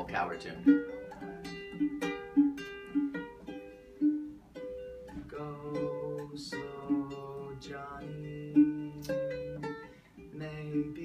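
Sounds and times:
ukulele strumming chords: 0.0 - 11.0.

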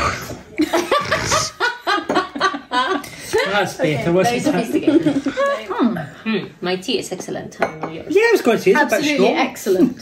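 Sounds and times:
throaty sound: 0.0 - 1.6
people laughing: 0.5 - 3.6, 4.4 - 5.9.

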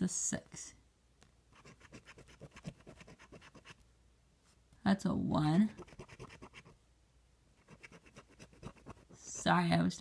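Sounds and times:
coin scraping scratch card: 5.8 - 6.7.

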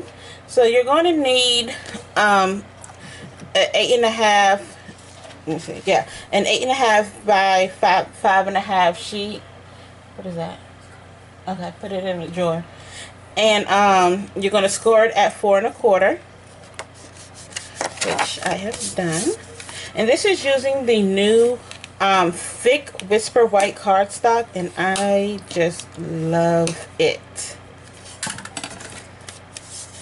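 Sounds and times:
cardstock rubbing on surface: 16.5 - 19.7, 29.3 - 30.0.

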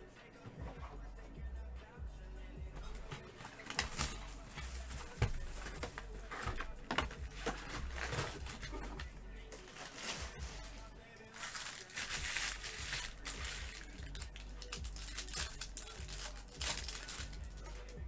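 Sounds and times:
background music with low beat: 0.0 - 18.0
foil packs crinkling: 3.3 - 18.0.

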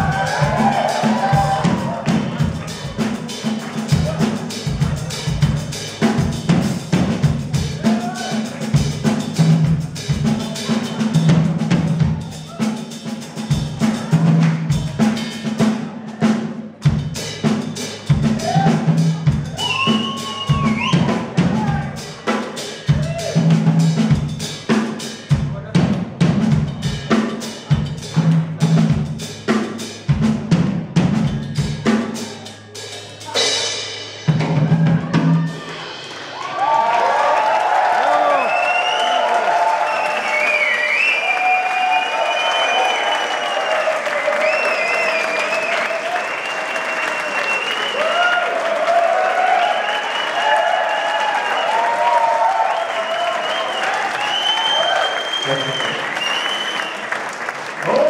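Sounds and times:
audience applauding and cheering: 0.0 - 5.7, 18.3 - 23.6, 34.5 - 58.0
drum and cymbal hits: 0.0 - 37.3.

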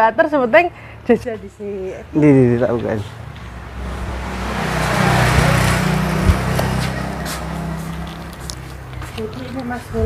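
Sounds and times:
motor vehicle passing by: 0.4 - 10.0.

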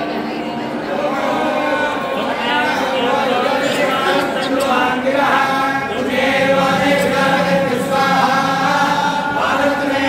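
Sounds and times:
men chanting in unison: 2.6 - 10.0.

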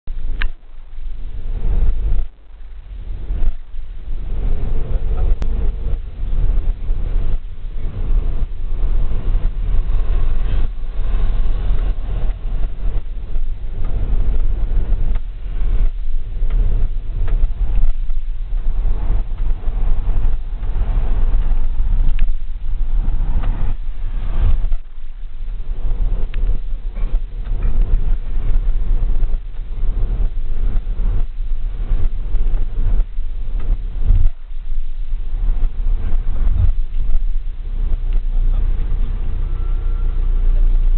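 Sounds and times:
vehicle engine and road rumble: 0.0 - 40.9.

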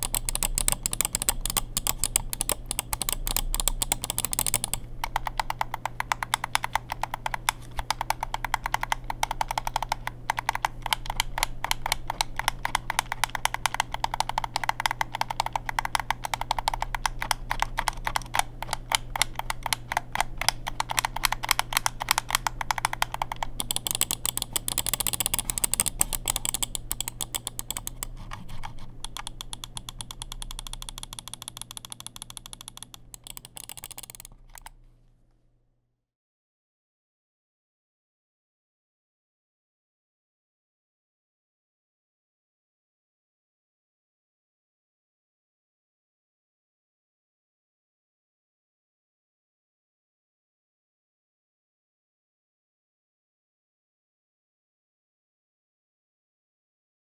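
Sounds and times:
mouse buttons clicking rapidly: 0.0 - 34.8.

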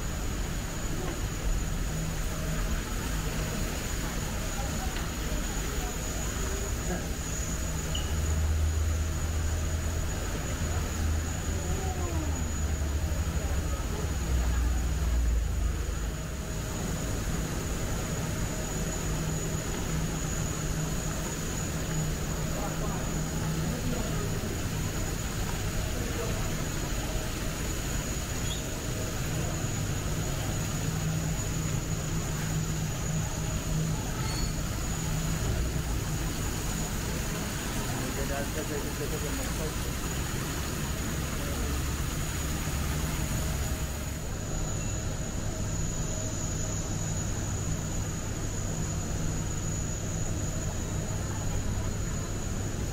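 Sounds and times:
faint voices: 0.0 - 17.0, 17.6 - 45.6.

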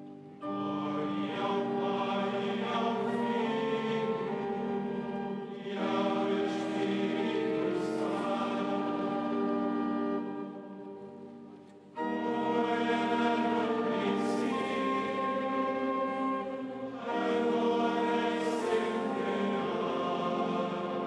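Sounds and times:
choir chanting long held notes: 0.0 - 11.3, 12.0 - 21.0.

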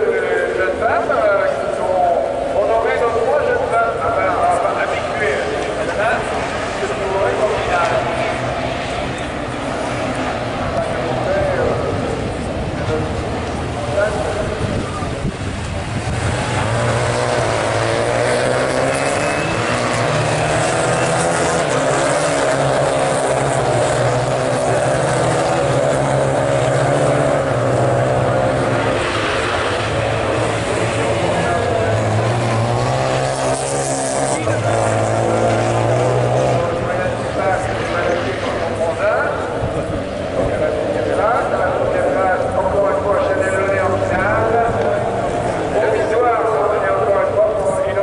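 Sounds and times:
racing car engines revving: 0.0 - 48.0.

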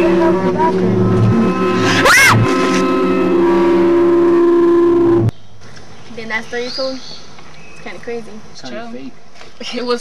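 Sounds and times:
droning music chord: 0.0 - 5.3
faint outdoor background: 0.0 - 10.0
woman screaming: 1.9 - 2.6.

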